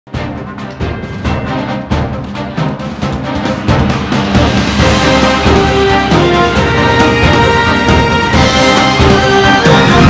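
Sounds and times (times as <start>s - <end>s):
heavy accented music hits: 0.1s - 10.0s
news theme music: 0.1s - 10.0s.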